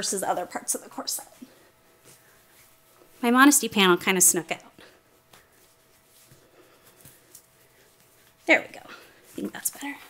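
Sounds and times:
satin fabric rustling: 0:01.2 - 0:04.1, 0:04.9 - 0:10.0.

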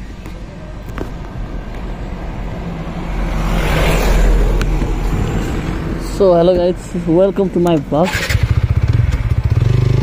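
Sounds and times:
truck passing: 0:00.0 - 0:10.0.

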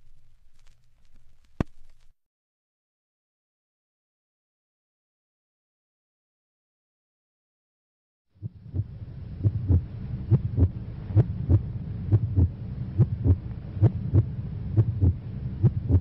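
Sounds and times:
steady low hum: 0:00.0 - 0:02.2, 0:08.3 - 0:16.0.

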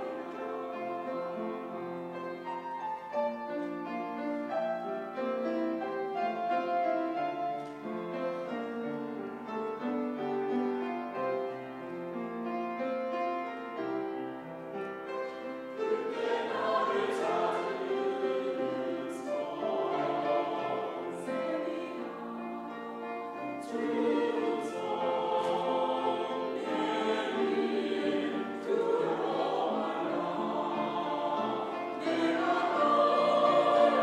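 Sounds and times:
choir singing: 0:00.0 - 0:03.3, 0:15.0 - 0:34.0
piano accompaniment: 0:00.0 - 0:34.0.

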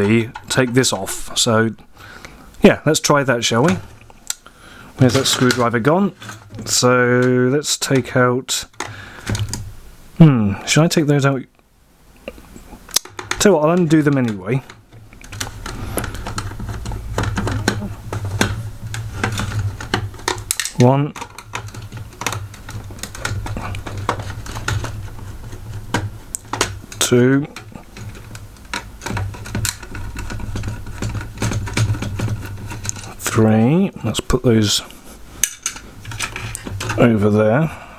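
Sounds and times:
low steady hum: 0:00.0 - 0:37.9.

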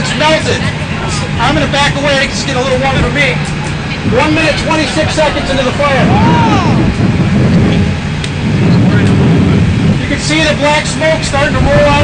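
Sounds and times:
fire roaring: 0:00.0 - 0:12.0.

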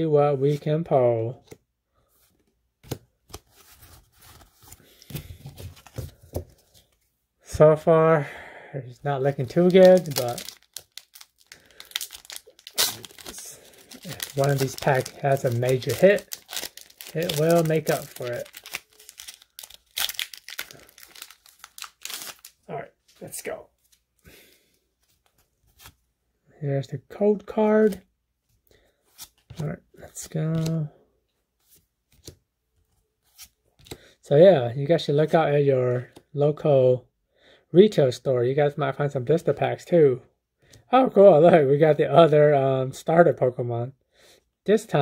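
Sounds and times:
cards sliding and rustling: 0:01.4 - 0:07.1, 0:25.0 - 0:26.0, 0:29.0 - 0:30.9, 0:33.2 - 0:34.0
foil pack crackle: 0:09.5 - 0:22.5.

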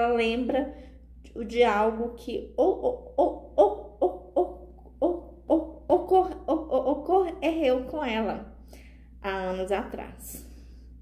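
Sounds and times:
woman speaking in halting syllables: 0:01.3 - 0:08.5, 0:09.2 - 0:10.5.

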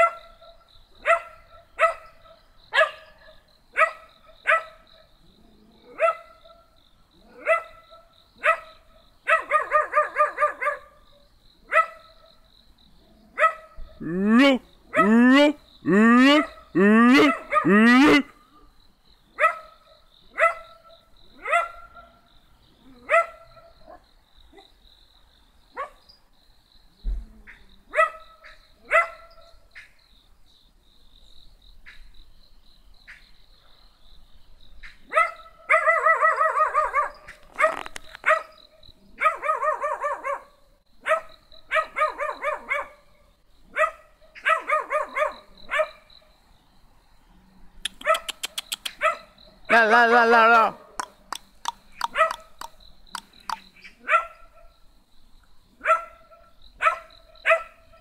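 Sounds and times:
dog barking: 0:00.0 - 0:05.1, 0:05.8 - 0:06.7, 0:07.3 - 0:11.0, 0:11.7 - 0:12.3, 0:13.4 - 0:13.8, 0:16.4 - 0:18.2, 0:19.4 - 0:22.2, 0:22.9 - 0:24.0, 0:25.8 - 0:26.0, 0:27.9 - 0:29.5, 0:35.1 - 0:38.5, 0:39.2 - 0:43.0, 0:43.7 - 0:46.1, 0:47.9 - 0:49.4, 0:52.0 - 0:52.7, 0:54.0 - 0:54.7, 0:55.8 - 0:58.0.

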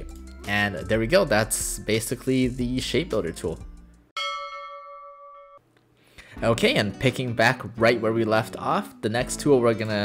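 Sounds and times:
bell-like chime ringing: 0:04.2 - 0:05.6.

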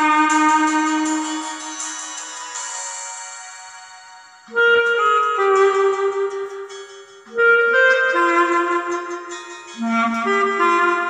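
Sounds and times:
clarinet playing a melody: 0:00.0 - 0:02.0, 0:04.4 - 0:11.0.

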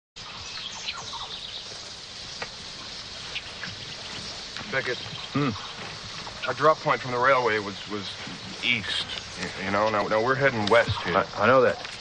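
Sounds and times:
birds chirping: 0:00.2 - 0:12.0
high hiss of insects: 0:00.2 - 0:12.0
sharp ticks: 0:02.2 - 0:12.0.

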